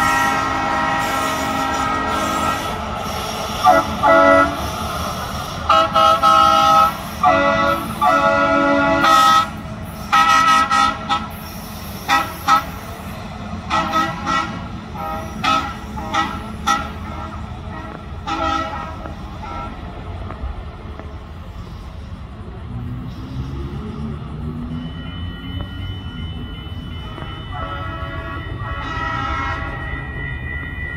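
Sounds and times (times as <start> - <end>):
air horn blasts: 0.0 - 2.9, 3.6 - 4.7, 5.7 - 11.4, 12.1 - 12.8, 13.7 - 19.9, 25.6 - 30.2.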